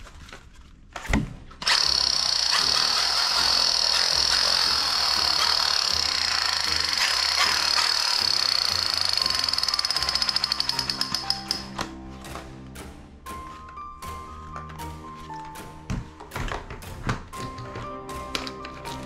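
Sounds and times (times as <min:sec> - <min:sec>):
toy rifle buzzing rattle: 0:01.6 - 0:11.7.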